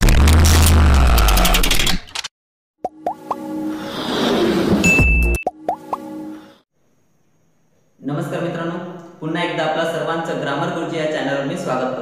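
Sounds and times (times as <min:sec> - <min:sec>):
high beep: 0:04.8 - 0:05.5
pops with rising pitch sweeps: 0:05.4 - 0:06.1.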